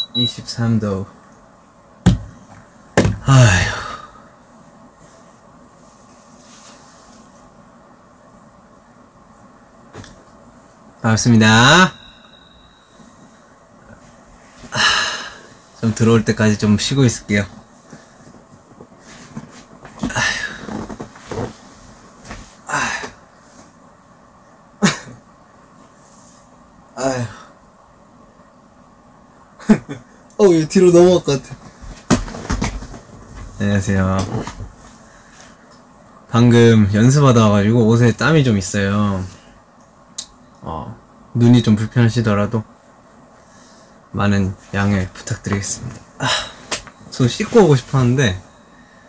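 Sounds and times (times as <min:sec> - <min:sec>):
man breathing out: 0:14.7 - 0:15.6.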